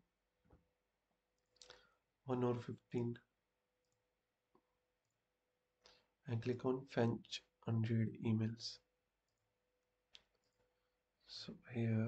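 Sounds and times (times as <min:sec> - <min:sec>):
person speaking: 0:11.3 - 0:12.0.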